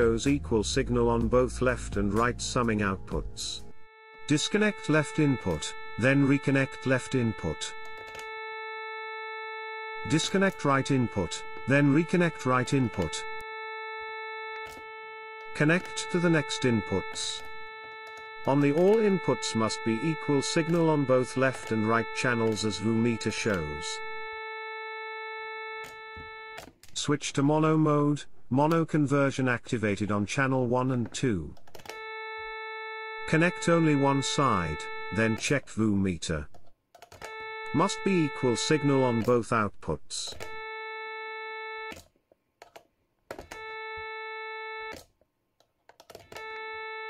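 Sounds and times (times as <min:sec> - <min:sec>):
buzzy sawtooth test tone: 0:01.6 - 0:26.7, 0:31.9 - 0:35.6, 0:37.3 - 0:39.4, 0:40.4 - 0:42.0, 0:43.5 - 0:45.0, 0:46.4 - 0:47.0.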